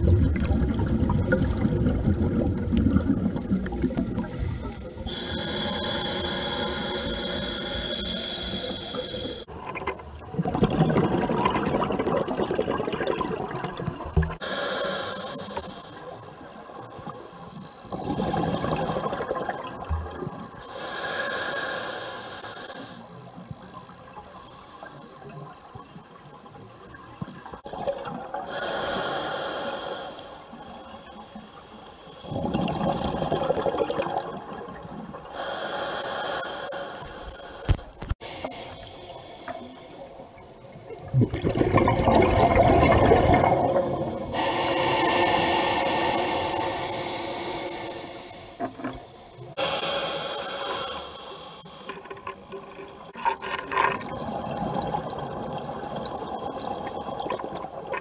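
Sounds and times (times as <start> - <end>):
exhaled bubbles rumbling: 0.0 - 5.1, 9.5 - 14.4, 17.8 - 20.6, 32.2 - 35.2, 40.7 - 44.4, 52.4 - 58.0
hissing regulator inhalations: 5.1 - 9.5, 14.4 - 16.5, 20.6 - 23.2, 28.4 - 32.4, 35.3 - 39.8, 44.3 - 48.8, 49.5 - 52.4.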